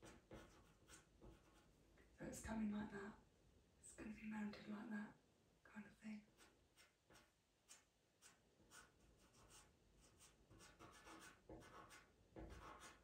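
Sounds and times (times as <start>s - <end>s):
pencil scratching on paper: 0.0s - 1.7s, 6.3s - 13.0s.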